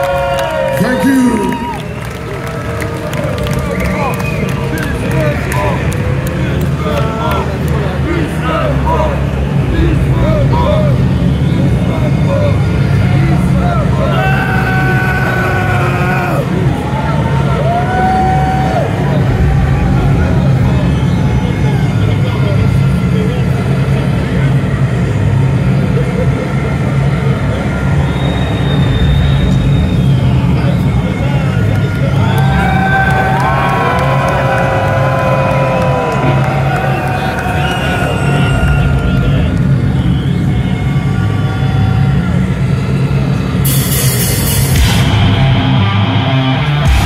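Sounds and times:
death metal band playing: 0:43.6 - 0:47.0.

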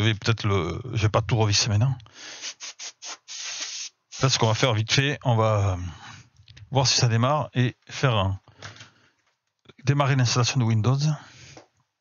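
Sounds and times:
air blasts hissing: 0:02.2 - 0:04.6.

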